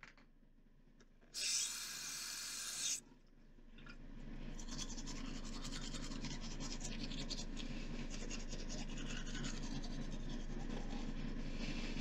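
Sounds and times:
toothbrush scrubbing teeth: 4.6s - 11.2s.

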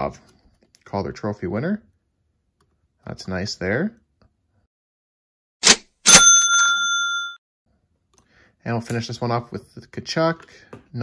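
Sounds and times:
bright bell ding: 6.1s - 7.4s.

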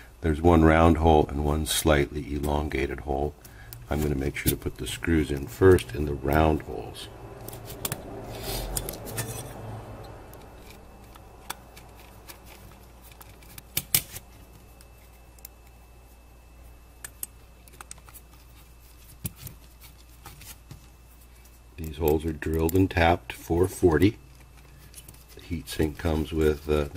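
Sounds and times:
soft rubbing: 18.0s - 21.7s.

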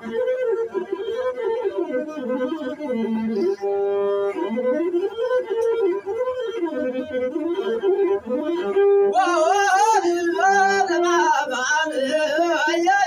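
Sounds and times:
bowed fiddle melody: 0.0s - 13.0s.

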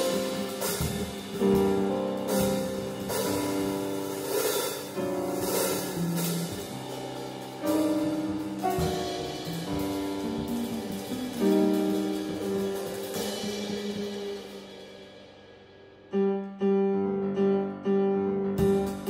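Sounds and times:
cymbal washes: 0.0s - 15.4s
jazz piano chords: 0.0s - 19.0s.

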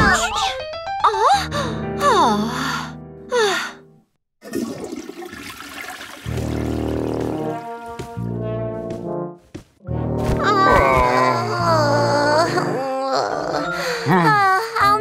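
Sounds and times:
toilet flushing: 4.4s - 7.7s
cartoon brass music: 6.3s - 9.4s.

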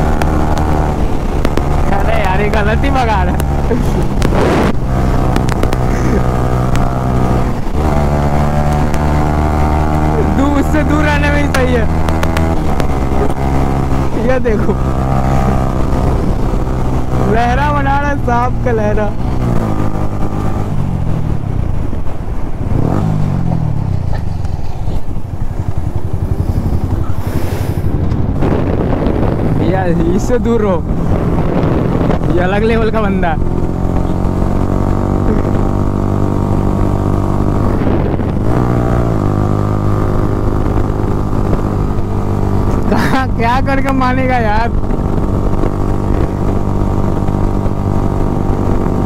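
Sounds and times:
motorcycle engine running: 0.0s - 49.0s
brief hiss: 27.2s - 27.9s.

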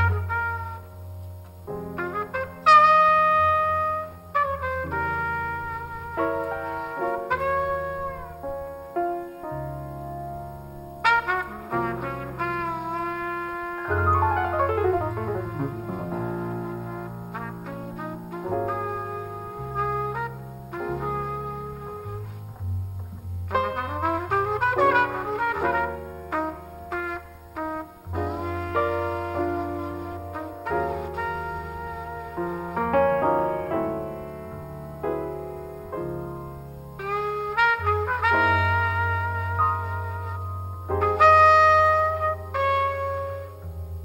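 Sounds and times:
jazz trumpet ballad: 0.0s - 44.0s
piano: 0.0s - 44.0s
acoustic bass: 9.5s - 44.0s.

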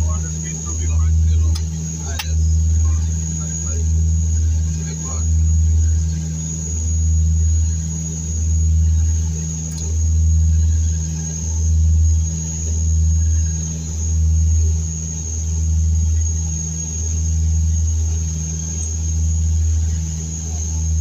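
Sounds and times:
thin high whine: 0.0s - 21.0s
turboprop propeller drone: 0.0s - 21.0s.

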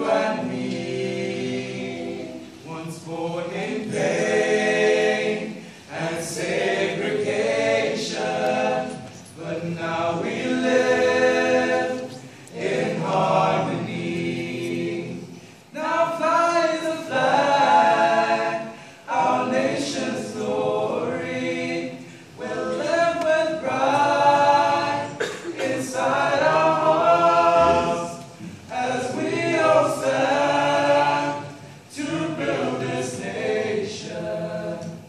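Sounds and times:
vocal ensemble singing unaccompanied: 0.0s - 35.0s.

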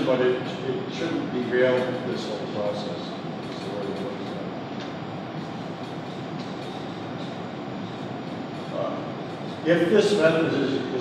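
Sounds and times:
hall hiss and hum: 0.0s - 11.0s.

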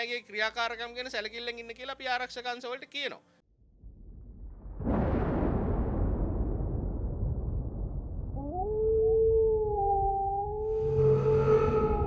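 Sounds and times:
low rumble: 3.6s - 12.0s
wolf howl: 8.4s - 12.0s.

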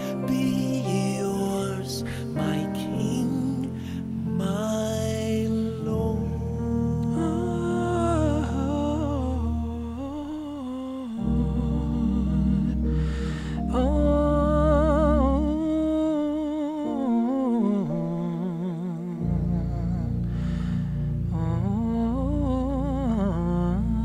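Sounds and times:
man singing a soul ballad: 0.0s - 24.0s
sustained keyboard chords: 0.0s - 24.0s
singer breathing in: 12.8s - 13.7s, 20.3s - 21.2s.

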